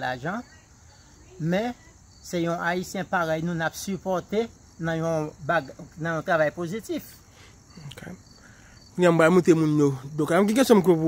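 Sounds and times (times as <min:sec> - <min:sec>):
insect chirring: 0:00.0 - 0:11.0.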